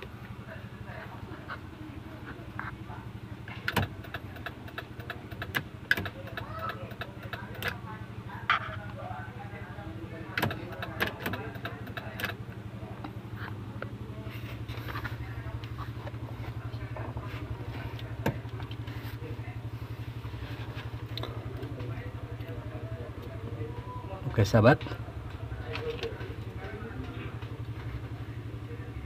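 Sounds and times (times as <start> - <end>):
engine idling: 0.0 - 29.0.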